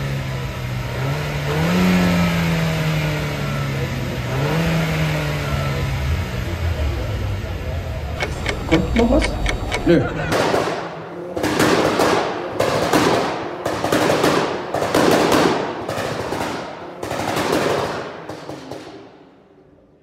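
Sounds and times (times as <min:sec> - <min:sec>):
car exhaust revving with pops: 0:08.2 - 0:10.7.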